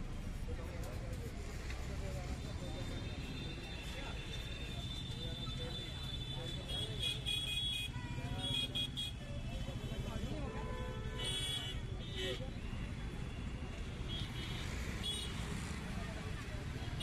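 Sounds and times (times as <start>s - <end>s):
chatter of passers-by: 0.0s - 17.0s.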